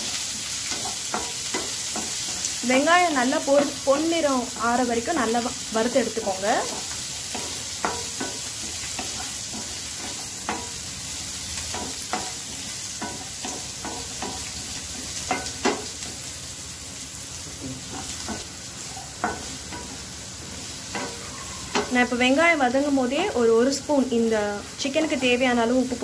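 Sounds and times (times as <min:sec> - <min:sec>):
onions sizzling in oil: 0:00.0 - 0:26.0
spatula scraping and tapping pan: 0:00.1 - 0:02.6, 0:06.6 - 0:16.3, 0:17.6 - 0:18.5, 0:19.2 - 0:22.2.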